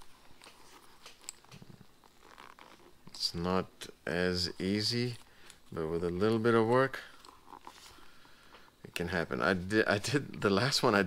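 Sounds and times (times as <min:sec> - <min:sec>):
strap buckle clicks and rustles: 0:00.0 - 0:03.2, 0:05.1 - 0:07.9.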